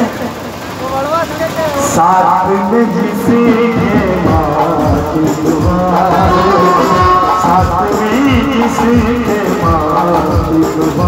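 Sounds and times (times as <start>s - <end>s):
steady background noise: 0.0s - 11.0s
person singing devotional song: 2.1s - 11.0s.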